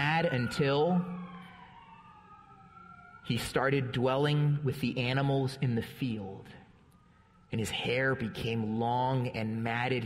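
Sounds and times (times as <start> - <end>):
echoing man's voice: 0.0 - 1.3, 3.2 - 6.8, 7.5 - 10.0
distant siren wailing: 0.0 - 9.6.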